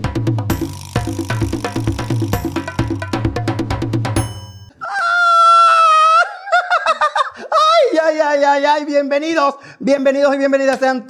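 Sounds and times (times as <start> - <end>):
man squealing in falsetto: 4.8 - 8.1
man giggling: 6.3 - 7.5.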